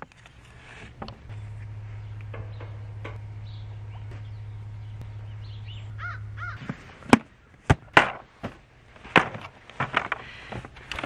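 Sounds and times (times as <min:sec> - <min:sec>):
bird calling: 0:00.2 - 0:08.0
plastic laundry baskets clattering: 0:07.1 - 0:11.0.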